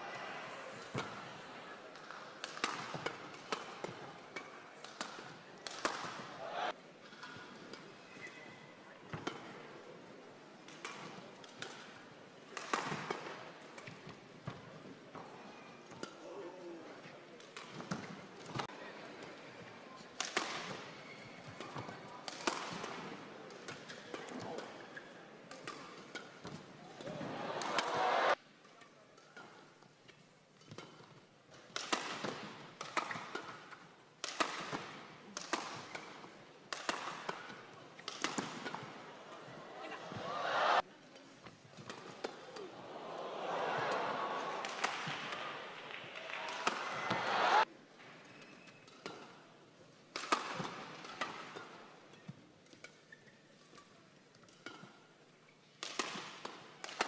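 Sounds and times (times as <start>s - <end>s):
crowd noise: 0.0s - 13.8s, 16.4s - 28.4s, 35.8s - 48.3s
racket striking shuttlecock: 2.0s - 6.7s, 12.6s - 14.6s, 25.5s - 28.4s, 30.6s - 40.8s, 41.8s - 42.8s, 43.4s - 47.7s, 50.1s - 53.0s, 55.8s - 57.0s.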